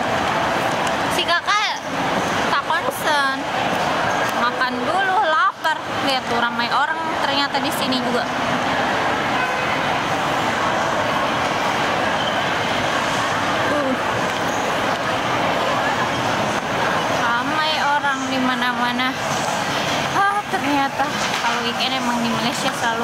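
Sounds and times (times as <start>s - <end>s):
crowd chatter and movement: 0.0s - 23.0s.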